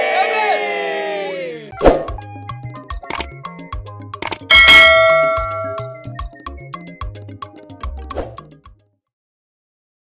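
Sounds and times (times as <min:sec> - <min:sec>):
music with steady beat and bass: 0:02.1 - 0:08.8
bell-like ding: 0:04.5 - 0:06.1.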